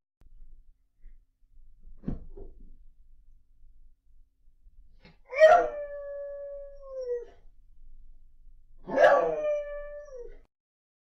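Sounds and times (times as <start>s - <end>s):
dog howling: 5.3s - 7.3s, 8.8s - 10.5s.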